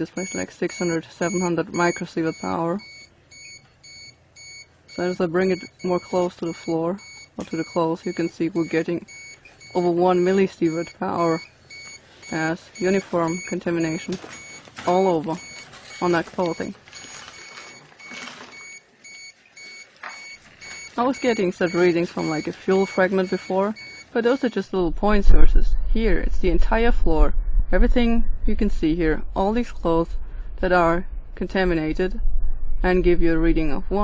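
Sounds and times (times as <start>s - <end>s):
radiation meter alarm beeping: 0.0s - 24.7s
rustling: 11.6s - 24.0s.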